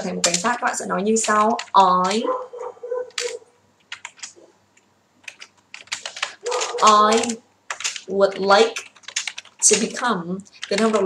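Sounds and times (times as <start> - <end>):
computer keyboard typing: 0.0 - 11.0.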